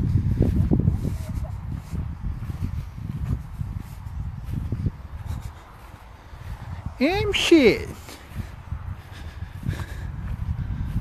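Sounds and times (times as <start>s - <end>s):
footsteps and swishes in grass: 0.0s - 11.0s
wind rumble on microphone: 0.0s - 11.0s.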